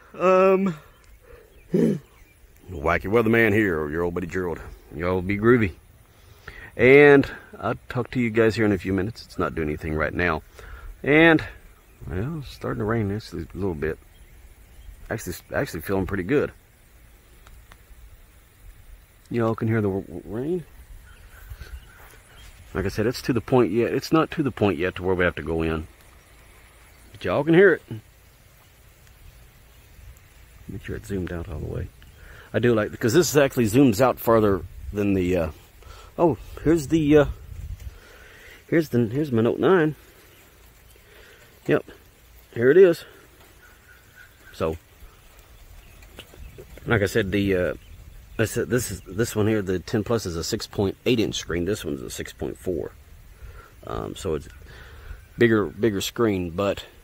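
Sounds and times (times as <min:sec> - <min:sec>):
man speaking: 0:00.0 - 0:01.0, 0:01.7 - 0:05.8, 0:06.5 - 0:14.0, 0:15.1 - 0:16.6, 0:19.3 - 0:20.7, 0:22.7 - 0:25.9, 0:27.1 - 0:28.1, 0:30.6 - 0:37.4, 0:38.6 - 0:40.0, 0:41.6 - 0:43.2, 0:44.5 - 0:44.8, 0:48.4 - 0:53.0, 0:53.8 - 0:54.6, 0:55.4 - 0:57.0
light rain hissing: 0:00.0 - 0:57.0
faint ticks: 0:00.8 - 0:01.5, 0:02.2 - 0:02.7, 0:16.5 - 0:19.7, 0:25.8 - 0:34.9, 0:39.3 - 0:48.5.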